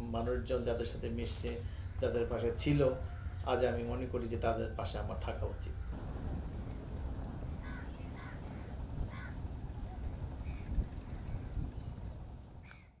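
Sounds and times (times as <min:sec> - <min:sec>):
steady low rumble: 0:00.0 - 0:13.0
crows cawing: 0:01.7 - 0:03.7, 0:07.5 - 0:09.5.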